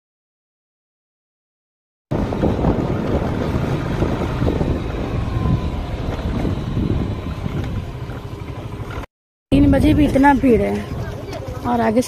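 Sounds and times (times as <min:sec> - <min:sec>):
wind buffeting microphone: 0:02.1 - 0:12.0.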